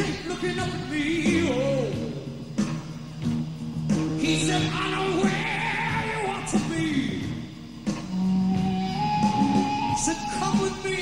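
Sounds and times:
heavy rock band playing: 0:00.0 - 0:11.0.

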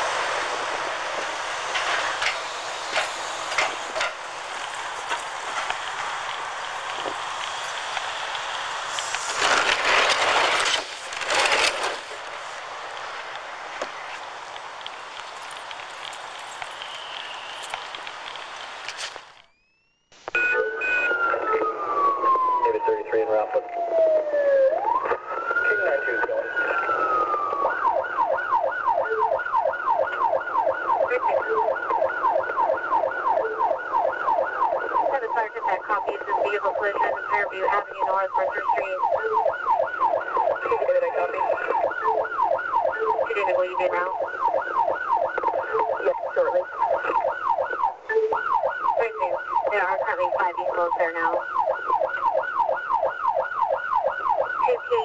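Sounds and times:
police siren wailing and yelping: 0:20.3 - 0:55.0.

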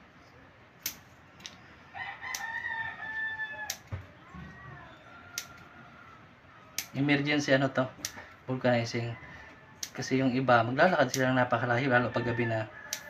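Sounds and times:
rooster crowing: 0:01.8 - 0:06.8, 0:08.2 - 0:10.4, 0:11.9 - 0:13.0.

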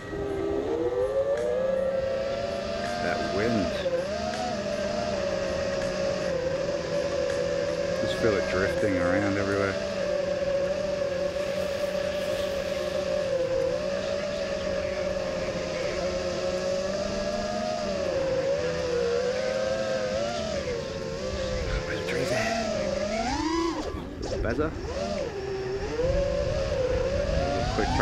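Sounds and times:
quadcopter motors whining: 0:00.0 - 0:28.0.

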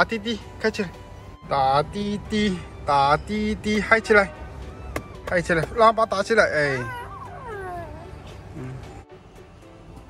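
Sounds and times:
baby vocalizing: 0:06.6 - 0:09.0.

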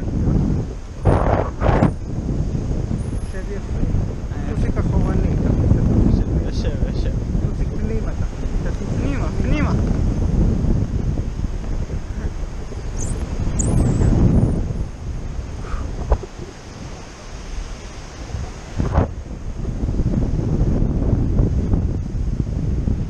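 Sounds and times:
wind noise on microphone: 0:00.0 - 0:23.0.

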